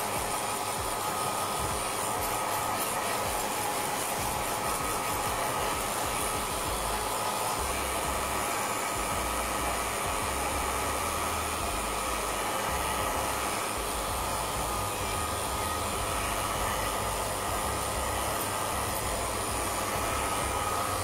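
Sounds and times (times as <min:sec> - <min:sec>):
hair dryer running: 0:00.0 - 0:21.0.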